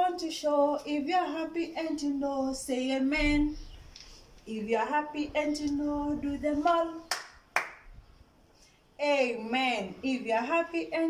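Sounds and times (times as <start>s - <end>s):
person clapping hands: 7.1s - 7.8s.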